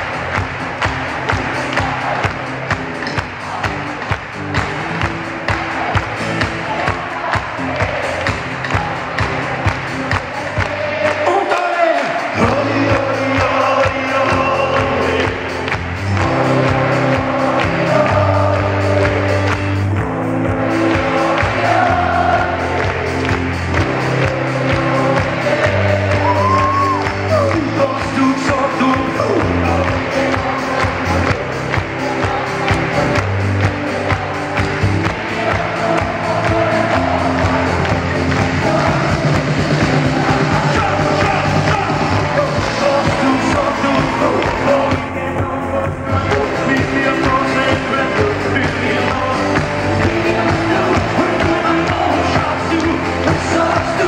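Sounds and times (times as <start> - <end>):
acoustic guitars: 0.0 - 54.0
drums: 0.0 - 54.0
person singing: 6.6 - 54.0
double bass: 12.4 - 54.0.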